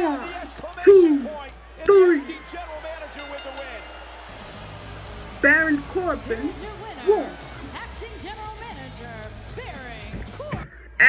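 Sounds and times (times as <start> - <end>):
low music: 3.0 - 10.6.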